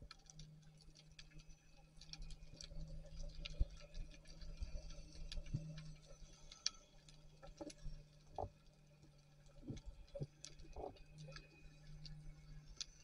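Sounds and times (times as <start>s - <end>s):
steady low underwater hum: 0.0s - 13.0s
underwater clicks and ticks: 0.0s - 13.0s.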